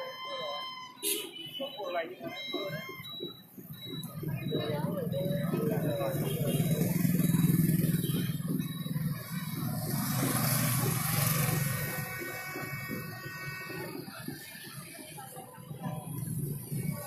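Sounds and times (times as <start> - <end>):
motorbike engines passing: 1.9 - 17.0
coach engine: 2.2 - 17.0.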